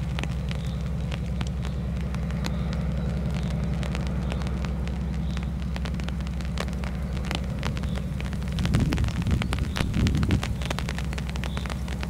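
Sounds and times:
diesel locomotive engine drone: 0.0 - 12.0.

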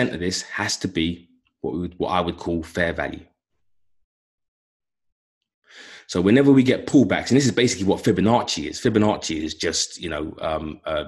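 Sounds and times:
man breathing in: 5.6 - 6.1.

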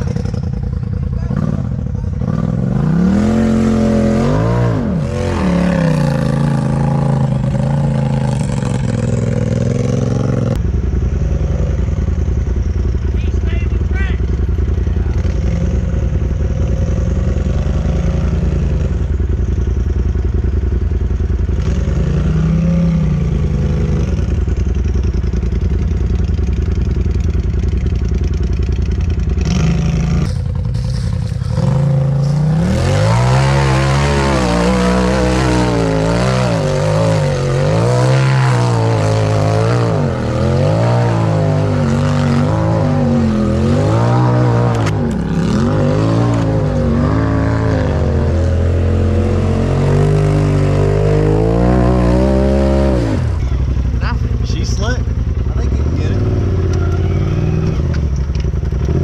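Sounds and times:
engine idling: 0.0 - 4.2, 5.9 - 32.7, 51.6 - 59.0
off-road buggy engine revving: 0.0 - 59.0.

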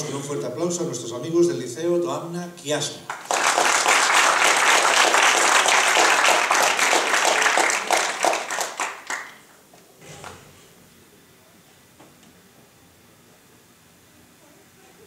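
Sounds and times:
audience applauding: 3.1 - 9.5.

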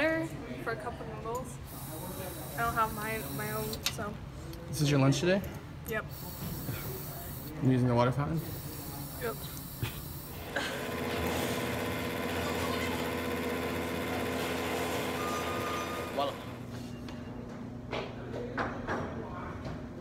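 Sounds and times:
microwave oven hum: 10.5 - 16.7.

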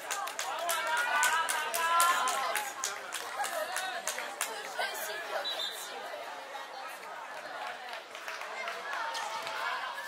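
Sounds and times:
young voices chattering: 0.3 - 10.0.

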